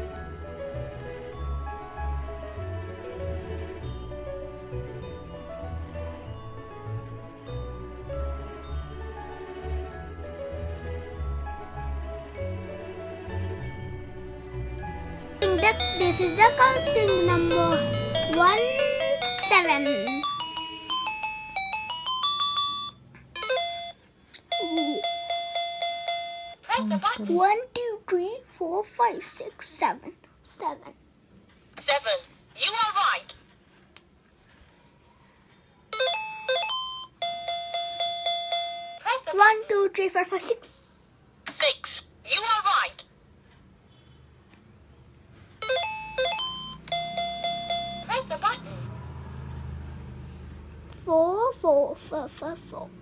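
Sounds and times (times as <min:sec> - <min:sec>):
person counting: 0:15.4 - 0:20.3, 0:24.4 - 0:25.2, 0:39.0 - 0:43.1
toy laptop electronic beeps: 0:15.4 - 0:26.6, 0:36.0 - 0:39.0, 0:45.6 - 0:48.3
repeated beeps: 0:45.6 - 0:48.1.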